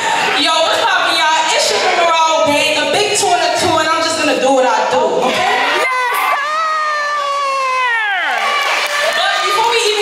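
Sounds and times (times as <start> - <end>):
crowd cheering: 5.2 - 10.0
high voice long shout: 5.7 - 8.4.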